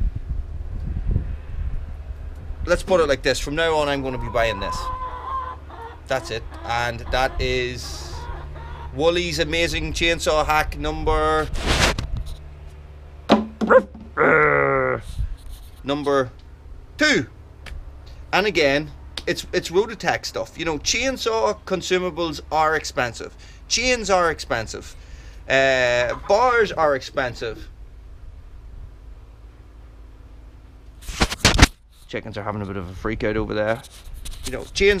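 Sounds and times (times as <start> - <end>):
wind buffeting microphone: 0.0 - 5.1
dog barking: 13.6 - 13.9.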